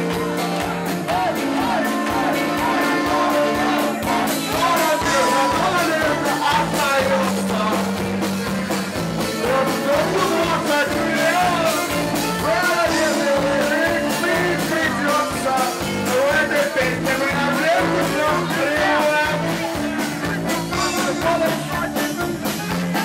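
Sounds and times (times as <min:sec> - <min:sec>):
accordion: 0:00.0 - 0:23.0
drums: 0:00.0 - 0:23.0
electric guitar: 0:00.0 - 0:23.0
man singing into a microphone: 0:00.8 - 0:08.2, 0:09.2 - 0:22.9.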